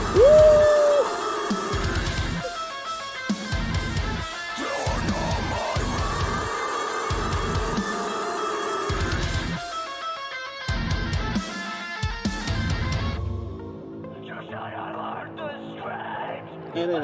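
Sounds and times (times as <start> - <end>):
drums: 0.0 - 13.7
distorted electric guitars: 0.0 - 13.8.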